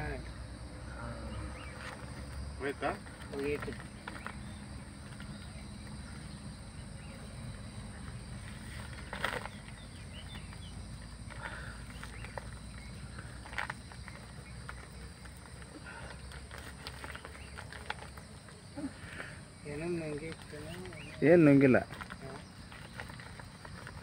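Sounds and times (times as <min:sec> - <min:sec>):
faint bird chirps: 0:00.8 - 0:02.7, 0:03.3 - 0:24.0
plastic sack crackling: 0:07.9 - 0:24.0.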